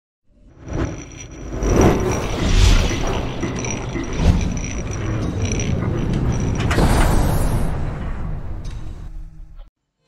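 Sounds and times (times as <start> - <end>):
metal gears turning and ratcheting: 0.5 - 7.3
deep rumble: 0.6 - 9.4.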